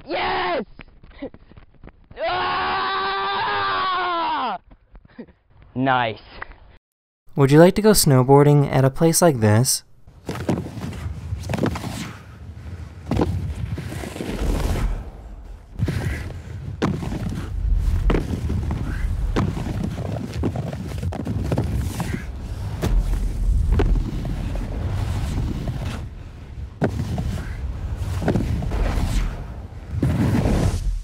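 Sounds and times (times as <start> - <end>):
snowboard knocks and thuds: 10.2 - 12.0, 13.0 - 26.1, 26.8 - 31.0
snowboard running over snow: 10.2 - 31.0.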